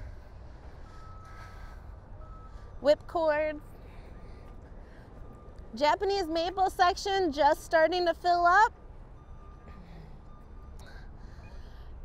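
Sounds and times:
vehicle reversing beeper: 0.0 - 6.3, 8.7 - 12.0.

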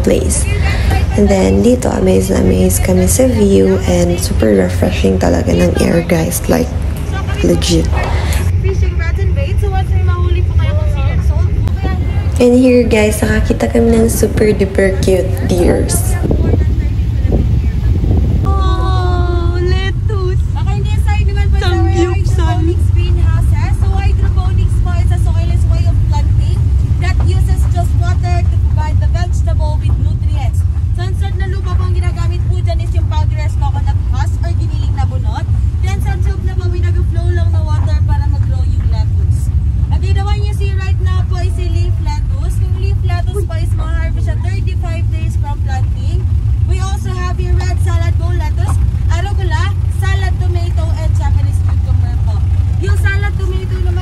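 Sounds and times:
people talking: 0.0 - 54.0
vehicle rumbling: 0.0 - 54.0.

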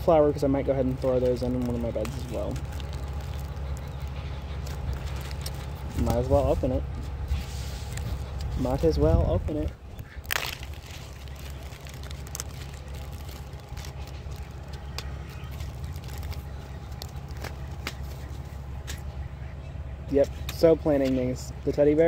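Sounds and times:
paper packet crinkling: 0.6 - 6.6, 10.1 - 18.5
paper packet tearing: 0.7 - 6.5, 10.1 - 18.3
wind rumble on microphone: 1.6 - 18.5.

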